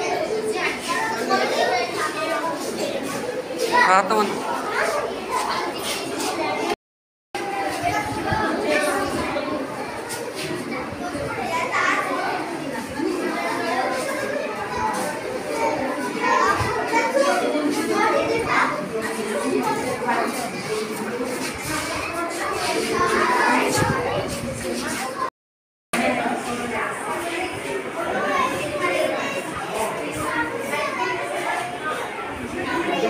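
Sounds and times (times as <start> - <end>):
children talking and calling out: 0.0 - 6.8, 7.4 - 25.3, 26.0 - 33.0.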